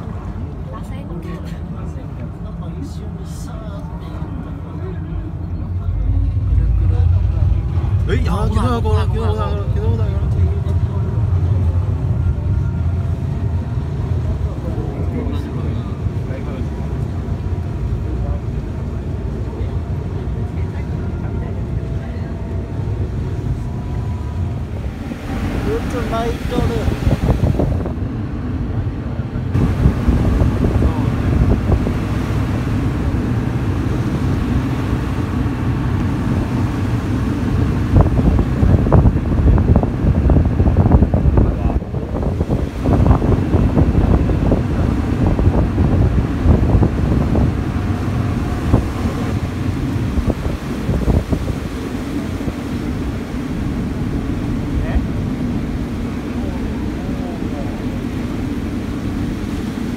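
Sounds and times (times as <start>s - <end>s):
boat engine: 0.0s - 59.9s
churning sea water: 0.0s - 59.9s
wind rumbling on microphone: 0.0s - 59.9s.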